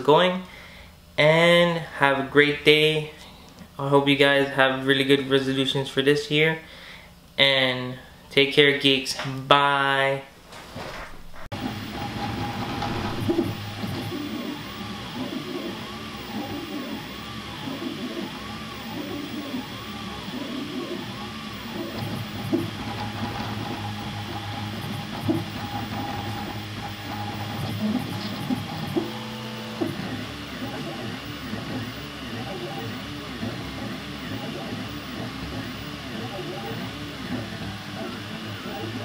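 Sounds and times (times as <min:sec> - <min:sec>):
printer stepper motors whining: 0:11.5 - 0:39.0.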